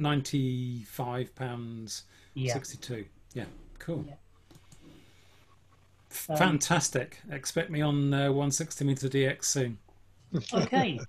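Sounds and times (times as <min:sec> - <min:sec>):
person saying yeah: 0:10.4 - 0:11.0.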